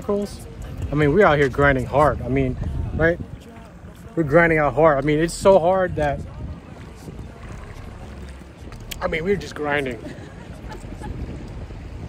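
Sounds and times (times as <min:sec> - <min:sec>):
wind on microphone: 0:00.0 - 0:12.0.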